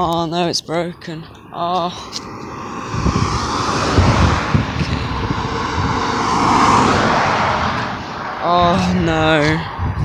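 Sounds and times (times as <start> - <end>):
car passing on road: 1.2 - 10.0.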